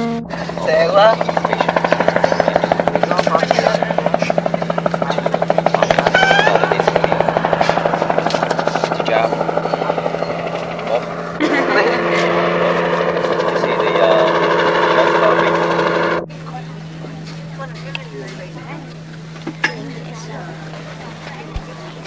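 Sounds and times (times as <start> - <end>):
helicopter rotor beating: 0.0 - 22.0
people's voices: 0.0 - 22.0
steady low hum: 0.0 - 22.0.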